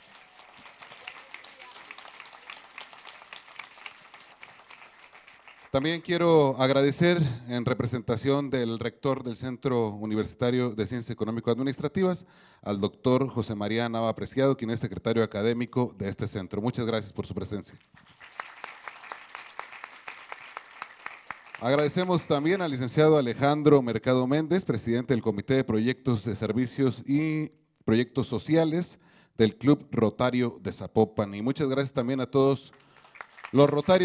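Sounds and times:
audience applause: 0:00.0 - 0:06.0, 0:18.0 - 0:22.6, 0:32.9 - 0:34.0.

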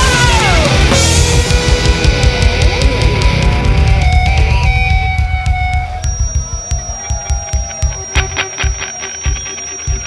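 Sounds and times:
heavy rock band playing: 0:00.0 - 0:10.0
sustained guitar: 0:00.0 - 0:10.0
thin high whine: 0:04.0 - 0:10.0.

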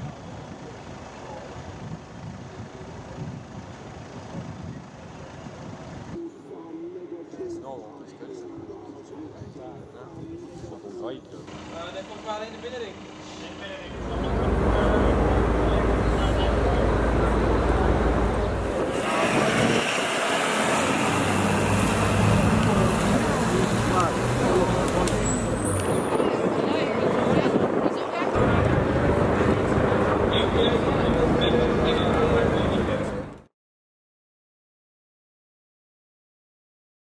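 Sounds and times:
traffic noise: 0:00.0 - 0:08.0, 0:11.4 - 0:33.5
voices: 0:06.2 - 0:19.8, 0:21.1 - 0:33.4
deep engine rumble: 0:11.5 - 0:19.5, 0:21.0 - 0:33.5.

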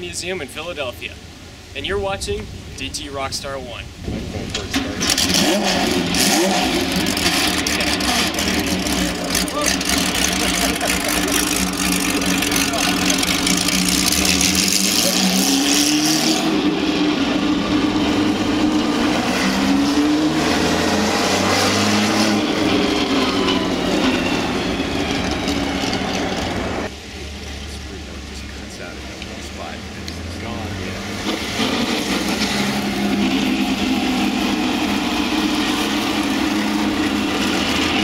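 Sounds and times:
racing car engine revving: 0:04.2 - 0:38.0.

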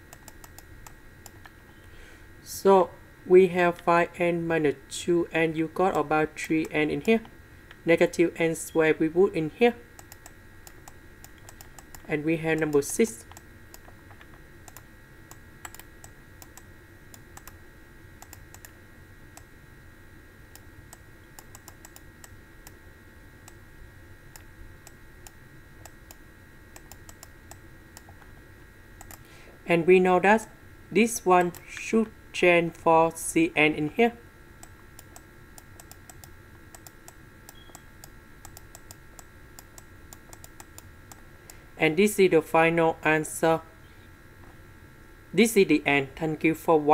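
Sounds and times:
low steady hum: 0:00.0 - 0:46.9.

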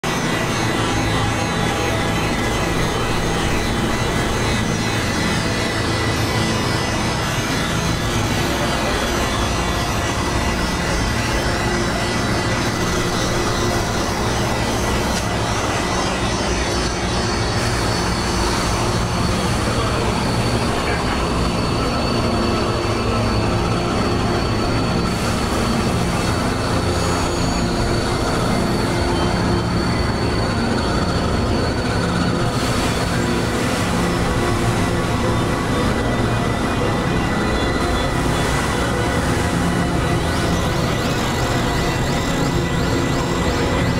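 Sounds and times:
rumbling hissing synthesizer drone: 0:00.0 - 0:43.9.

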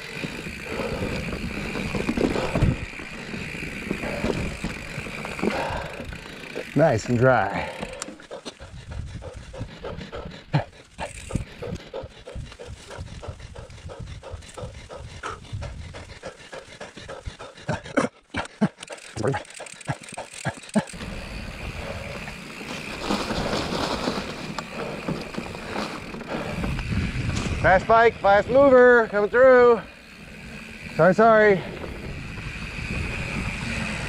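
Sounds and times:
bike clattering over bumps: 0:00.0 - 0:08.8, 0:18.4 - 0:34.0
rider breathing hard: 0:00.0 - 0:29.1, 0:29.8 - 0:34.0
bike tyres on dirt: 0:00.0 - 0:34.0.

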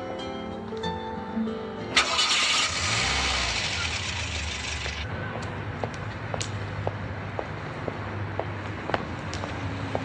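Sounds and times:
music: 0:00.0 - 0:02.2
passing vehicle road noise: 0:02.2 - 0:10.0.

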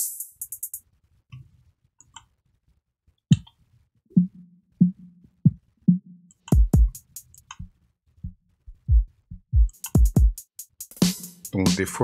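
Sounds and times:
drum loop playing: 0:04.2 - 0:07.7, 0:08.8 - 0:12.0.

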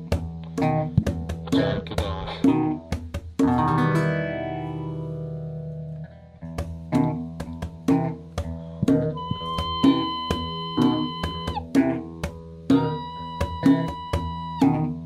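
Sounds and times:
percussion: 0:00.0 - 0:04.4, 0:06.4 - 0:15.0
bass guitar: 0:00.0 - 0:15.0
electric guitar: 0:00.0 - 0:15.0.

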